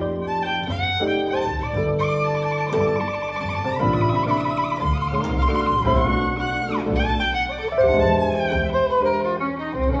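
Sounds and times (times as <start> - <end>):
upright double bass: 0.0 - 10.0
violin playing jazz solo: 0.0 - 10.0.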